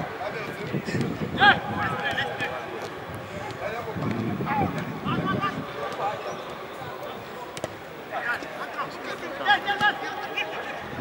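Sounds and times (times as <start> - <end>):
players shouting: 4.4 - 11.0
football being kicked: 7.5 - 7.8.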